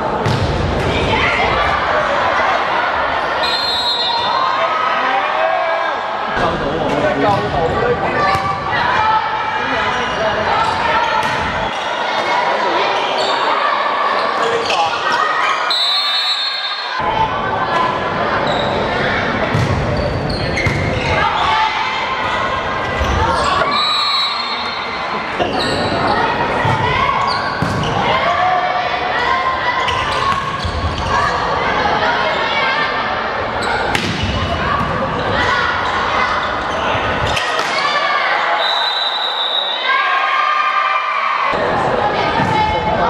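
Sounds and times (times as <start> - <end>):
players calling and shouting: 0.0 - 43.0.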